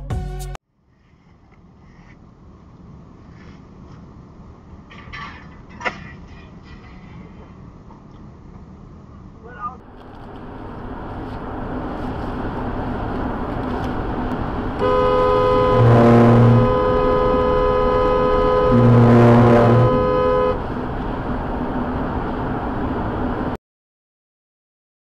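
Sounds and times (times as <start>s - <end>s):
road noise: 0.6s - 23.6s
deep horn blasts: 12.3s - 20.8s
vehicle horn held: 14.8s - 20.6s.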